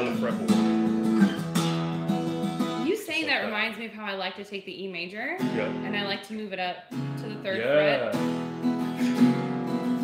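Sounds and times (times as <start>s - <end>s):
acoustic guitar chord: 0.0s - 3.5s, 7.0s - 10.0s
person talking: 2.8s - 3.8s, 7.4s - 8.2s.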